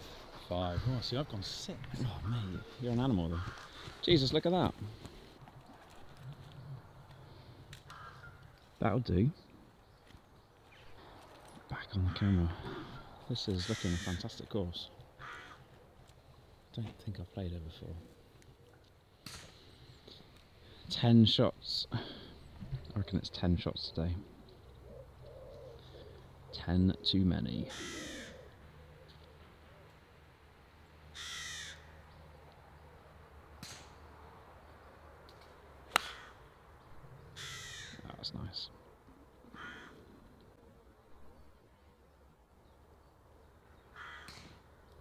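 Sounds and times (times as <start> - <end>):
man speaking: 0.4 - 5.0, 11.7 - 14.9
crows cawing: 2.0 - 4.1, 7.1 - 8.6, 11.9 - 14.4, 15.2 - 15.8, 27.6 - 29.1, 31.1 - 32.1, 35.9 - 38.2, 39.4 - 40.3, 43.7 - 44.7
golf club striking ball: 35.9 - 36.2.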